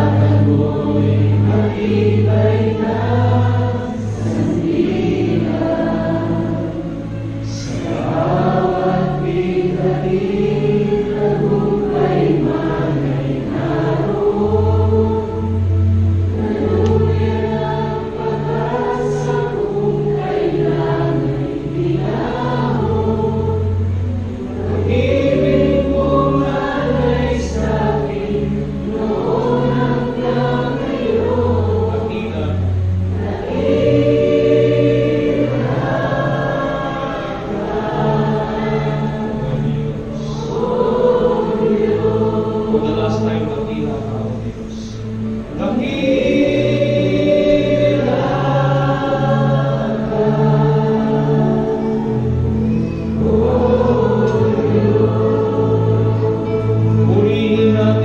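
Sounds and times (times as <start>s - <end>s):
voices singing together: 0.0s - 58.0s
worship band playing: 0.0s - 58.0s.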